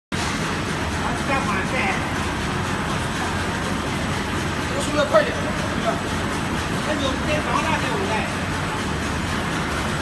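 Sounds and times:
conveyor machinery with low hum: 0.2 - 10.0.

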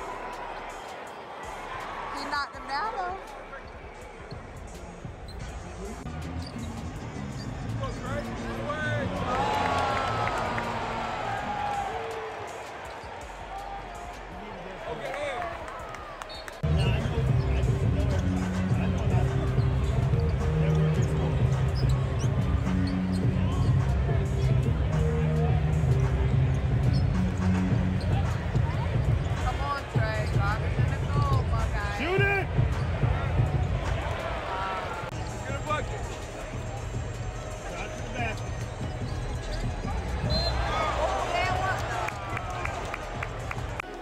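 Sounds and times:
arena music over pa: 0.0 - 44.0
crowd voices: 0.0 - 44.0.

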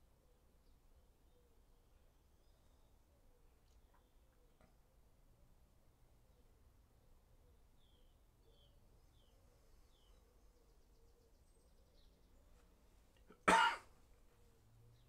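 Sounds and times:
faint bird chirps: 0.0 - 5.2, 6.2 - 13.5
man coughing: 13.3 - 13.9.

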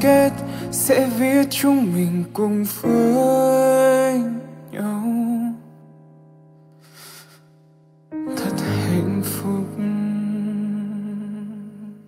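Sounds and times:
pop ballad singing: 0.0 - 5.8, 8.2 - 12.0.

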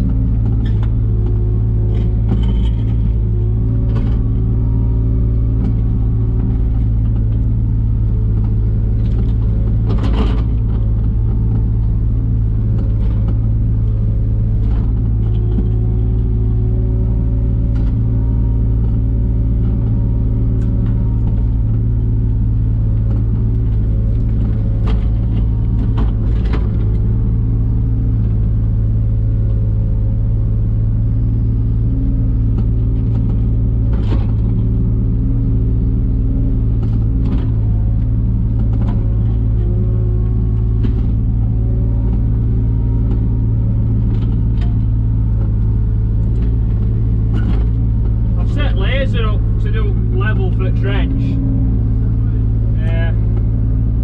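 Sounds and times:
diesel engine humming: 0.0 - 54.0.

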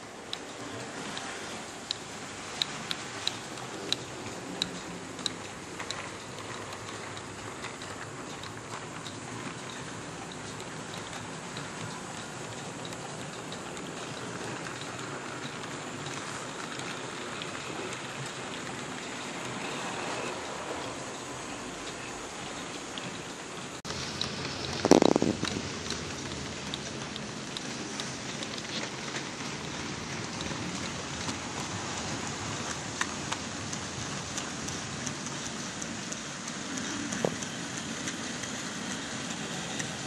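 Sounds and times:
model train rumbling on track: 0.0 - 40.0.

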